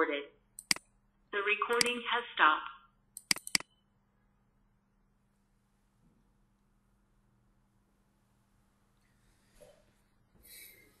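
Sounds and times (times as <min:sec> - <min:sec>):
computer mouse clicks: 0:00.6 - 0:00.9, 0:01.7 - 0:02.0, 0:03.2 - 0:03.8
automated voice prompt: 0:01.4 - 0:02.8.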